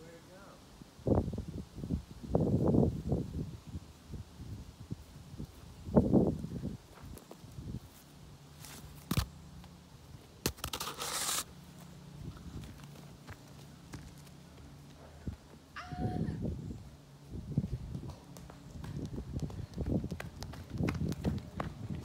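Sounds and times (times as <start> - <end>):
footsteps on grass: 6.8 - 9.2.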